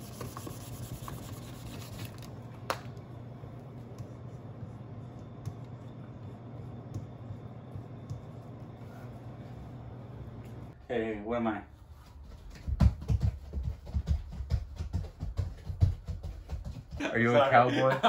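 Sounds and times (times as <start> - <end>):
marker writing on whiteboard: 0.0 - 2.2
whiteboard being wiped: 0.0 - 2.3
steady low hum: 0.0 - 18.0.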